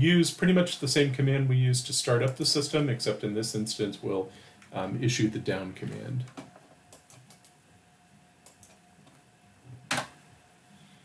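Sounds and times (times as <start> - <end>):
mouse and keyboard clicks: 6.9 - 7.6.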